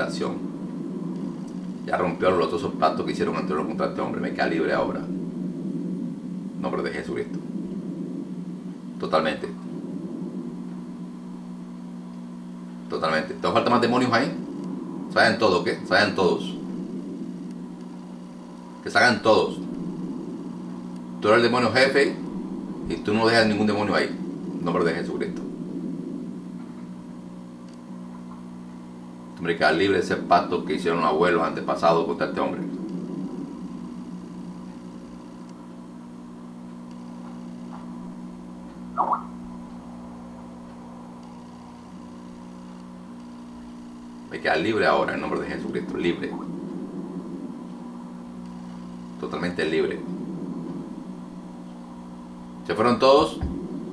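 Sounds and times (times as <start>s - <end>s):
faint hiss: 0.0s - 53.9s
steady low hum: 0.0s - 53.9s.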